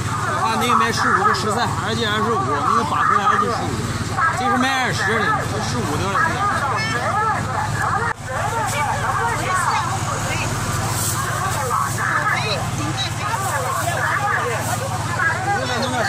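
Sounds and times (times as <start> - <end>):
voices talking: 0.0 - 16.0.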